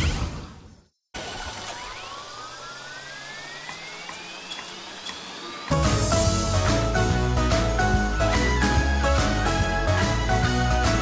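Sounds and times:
slot machine reels whirring: 0:01.2 - 0:11.0
thin rising tone: 0:01.7 - 0:08.8.

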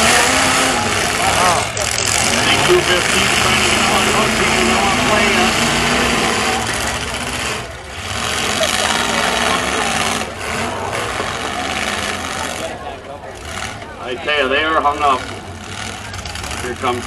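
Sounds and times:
announcer over pa: 0:00.0 - 0:07.4
truck engines revving: 0:00.0 - 0:17.0.

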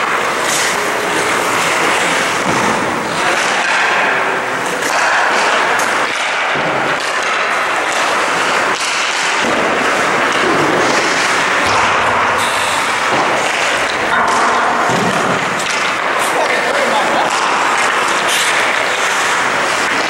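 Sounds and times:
echoing ice rink noise: 0:00.0 - 0:20.0
hockey sticks knocking pucks: 0:00.0 - 0:20.0.

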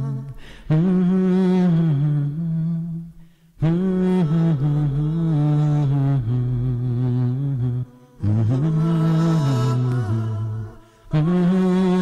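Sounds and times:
man humming low notes: 0:00.0 - 0:12.0.

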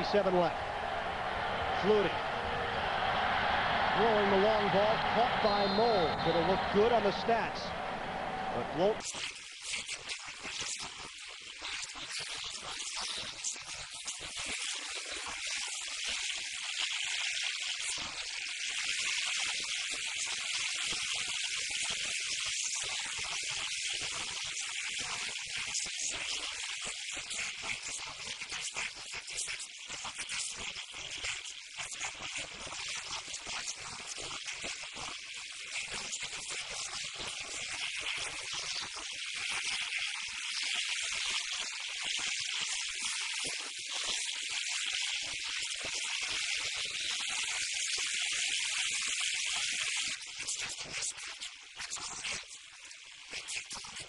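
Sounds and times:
high-pitched tape hiss: 0:00.0 - 0:09.0
faint broken broadcast sound: 0:00.0 - 0:09.1.

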